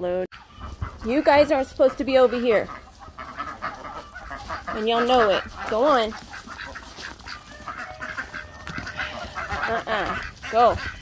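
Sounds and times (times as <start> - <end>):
ducks quacking softly: 0.3 - 11.0.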